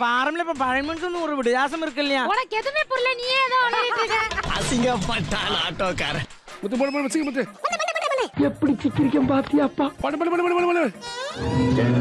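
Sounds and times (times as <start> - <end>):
person making wavering wordless calls: 7.4 - 9.8.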